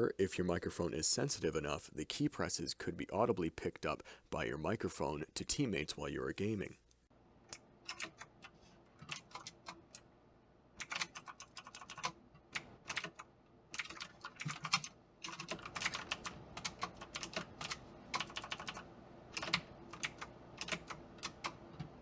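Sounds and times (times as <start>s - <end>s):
clicky mechanical keyboard typing: 7.5s - 10.0s, 10.8s - 22.0s.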